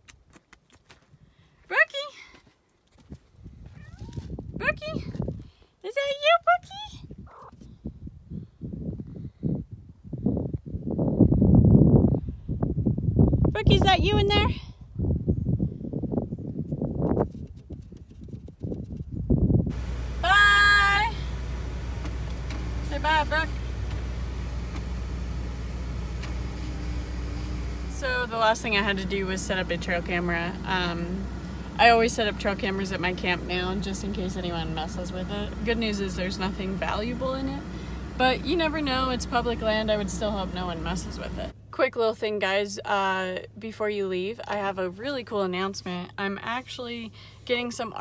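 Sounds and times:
low scuffing and rumbling: 2.2s - 5.6s, 21.2s - 38.2s
cat meowing: 3.7s - 4.2s
steady tone: 19.7s - 41.6s
car engine idling: 19.7s - 47.4s.

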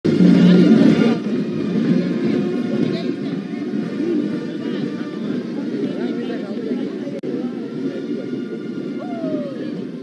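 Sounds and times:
people talking at once: 0.2s - 10.0s.

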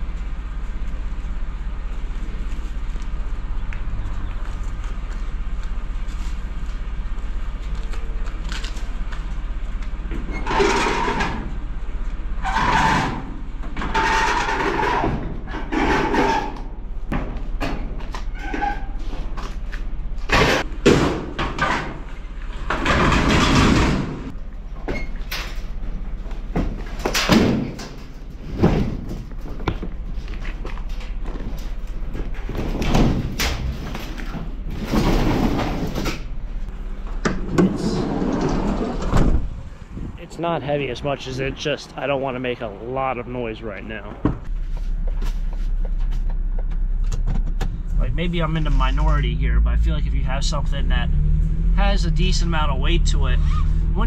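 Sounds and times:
steady low hum: 0.0s - 54.0s
metal dryer scraping: 10.2s - 11.6s, 12.4s - 16.8s, 37.4s - 39.5s.

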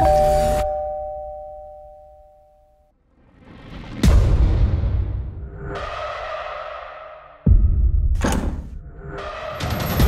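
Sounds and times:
two-note bell-like chime: 0.0s - 2.8s.

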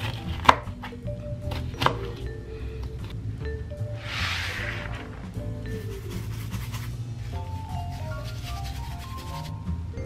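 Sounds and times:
knife cutting pepper: 0.0s - 0.9s.

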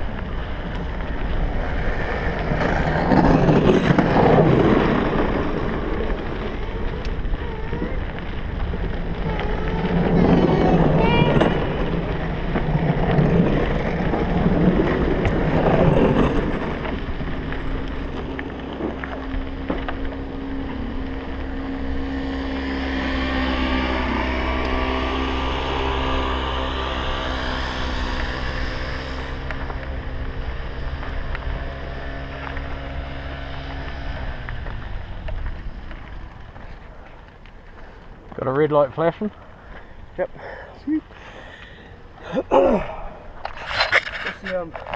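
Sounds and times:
bike tyres on gravel: 0.0s - 44.9s.

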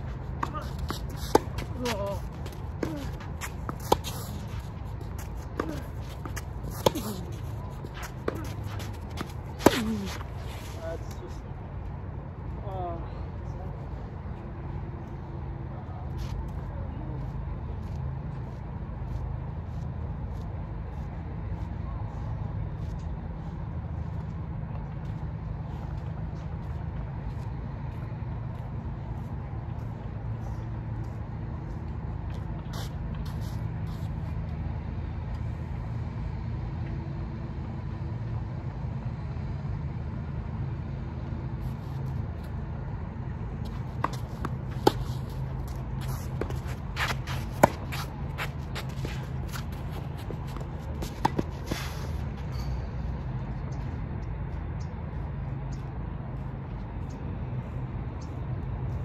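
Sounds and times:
tennis ball bouncing on clay: 0.0s - 10.4s, 43.5s - 51.8s.

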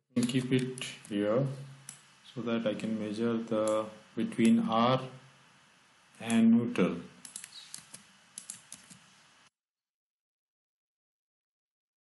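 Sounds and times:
keyboard keys clicking: 7.2s - 9.0s.

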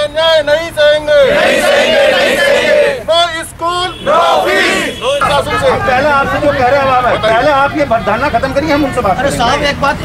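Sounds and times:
protesters shouting slogans: 1.1s - 3.1s, 3.9s - 7.0s.

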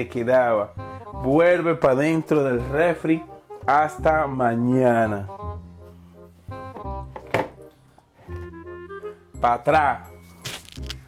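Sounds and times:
background music with bass line: 0.0s - 11.0s
plastic container knocking on shelf: 6.8s - 7.6s.

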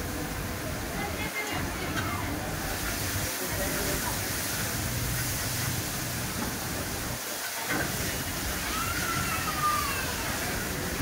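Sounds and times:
noodles frying in a wok: 0.0s - 11.0s.

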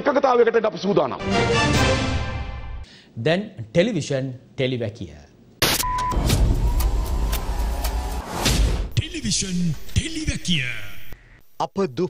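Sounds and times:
high test-card beep: 5.8s - 6.3s.

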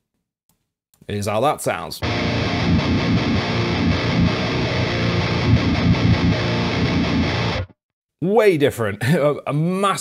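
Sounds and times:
distorted electric guitar riff: 2.0s - 7.8s.

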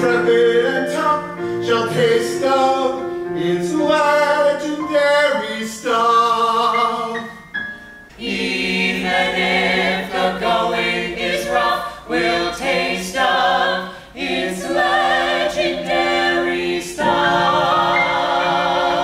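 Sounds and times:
choir singing in harmony: 0.0s - 19.0s.

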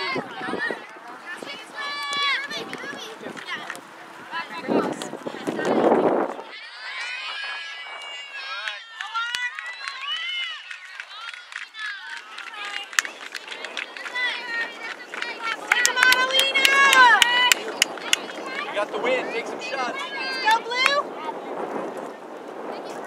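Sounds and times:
high-pitched shouts and calls: 6.4s - 18.6s.

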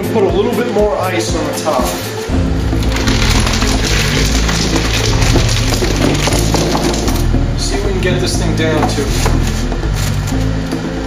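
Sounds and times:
background music with bass line: 0.0s - 11.0s
ice cubes clattering into cooler: 2.8s - 7.3s.

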